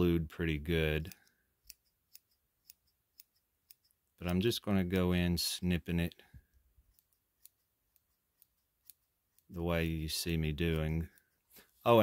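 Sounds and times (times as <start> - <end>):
scissors snipping fur: 1.1 - 3.9, 6.8 - 9.6.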